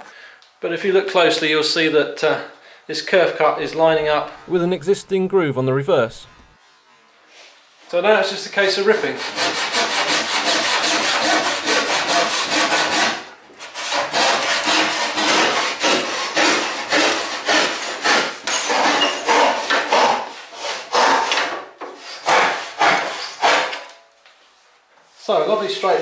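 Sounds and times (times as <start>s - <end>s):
hand saw cutting wood: 8.9s - 24.0s.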